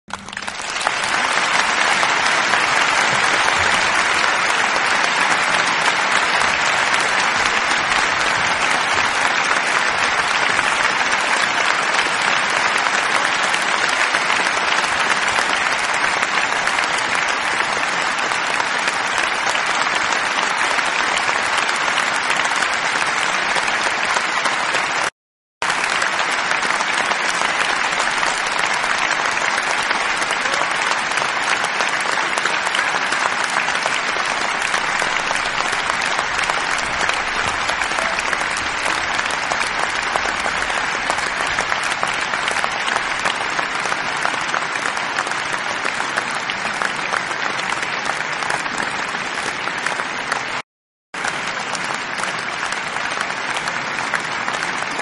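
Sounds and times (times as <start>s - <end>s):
crowd applauding: 0.1s - 50.6s, 51.2s - 55.0s.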